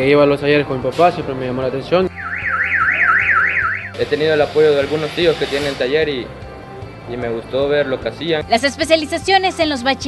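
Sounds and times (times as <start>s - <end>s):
car alarm siren: 2.1s - 4.0s.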